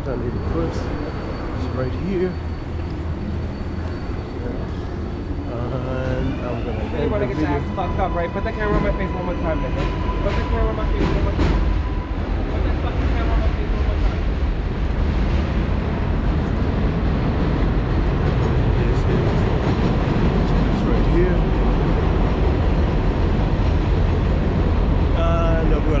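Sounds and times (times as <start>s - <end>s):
city street noise with deep rumble: 0.0s - 26.0s
person speaking: 5.5s - 7.9s.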